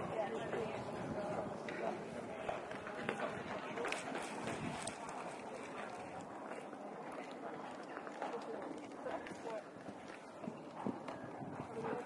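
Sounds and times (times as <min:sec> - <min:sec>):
horse hoofbeats on sand: 0:08.0 - 0:12.0.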